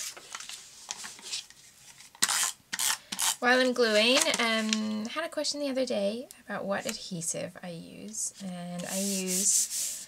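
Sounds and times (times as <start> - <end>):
paper handling: 0.0 - 3.4.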